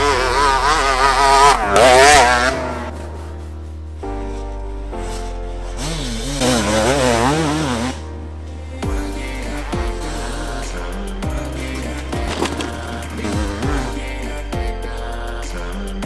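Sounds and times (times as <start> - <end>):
motorcycle engine revving: 0.0 - 3.4, 5.7 - 8.1, 11.6 - 14.2
electronic music with bass line: 0.0 - 16.0.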